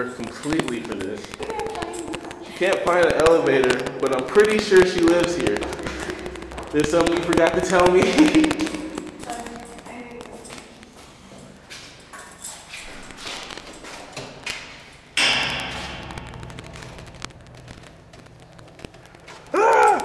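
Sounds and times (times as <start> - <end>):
light footsteps tapping: 0.0 - 12.0
heavy metal door clunk: 15.2 - 17.8.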